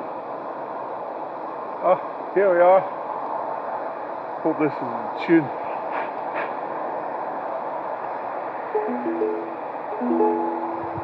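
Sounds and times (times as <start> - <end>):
steady hiss: 0.0 - 11.0
ukulele notes and chords: 8.8 - 11.0.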